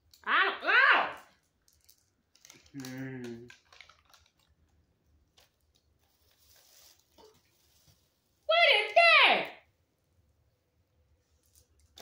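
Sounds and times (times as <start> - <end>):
soft clicks and rustles: 3.5 - 8.4.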